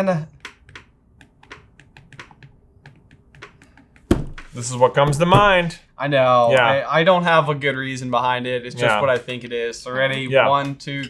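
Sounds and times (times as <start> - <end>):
stylus tapping on tablet glass: 0.4 - 4.6.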